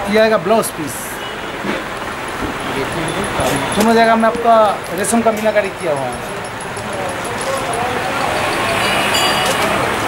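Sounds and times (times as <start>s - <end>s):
background chatter: 0.0s - 10.0s
busy hall hum: 0.0s - 10.0s.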